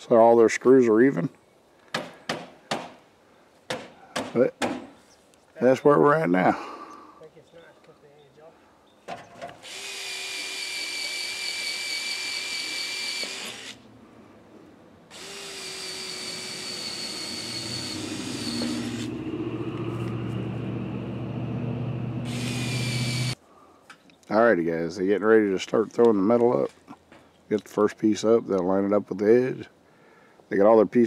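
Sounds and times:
power drill boring through metal: 9.6 - 13.8, 15.1 - 19.2, 22.2 - 23.4
low hum: 17.2 - 23.4.

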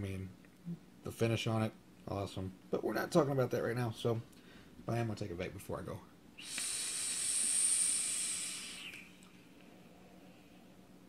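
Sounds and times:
breathy vaporizer hiss: 6.4 - 10.7.

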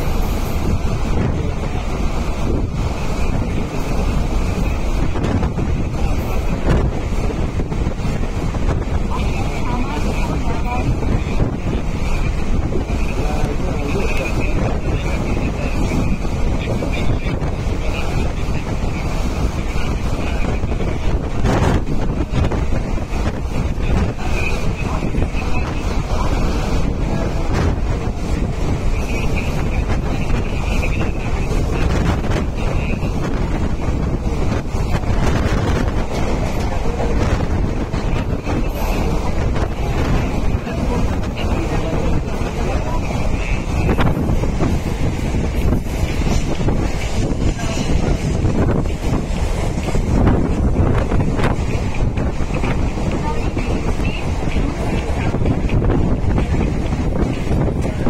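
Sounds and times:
train running on track: 0.0 - 58.0
wind rushing over microphone: 0.0 - 58.0.

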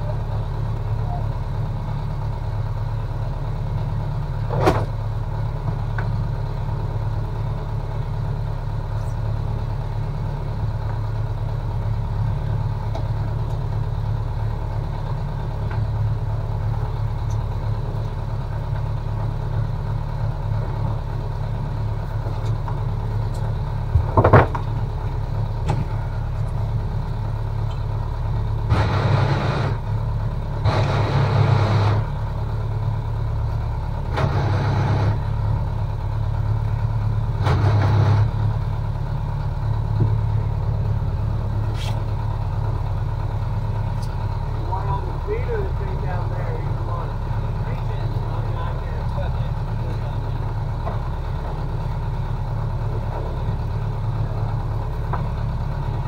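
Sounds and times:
boat engine idling: 0.0 - 56.0.

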